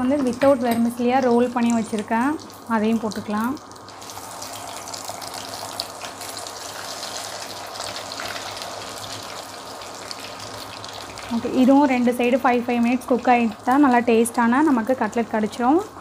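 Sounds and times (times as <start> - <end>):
food deep-frying in oil: 0.0 - 16.0.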